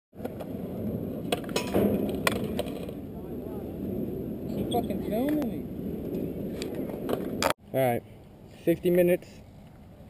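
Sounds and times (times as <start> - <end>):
skateboard wheels rolling on concrete: 0.1 - 10.0
skateboard clacks: 1.2 - 3.0.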